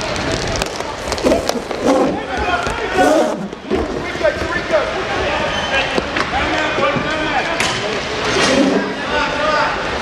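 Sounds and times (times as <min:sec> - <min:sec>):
echoing voices and shouts: 0:01.2 - 0:07.6.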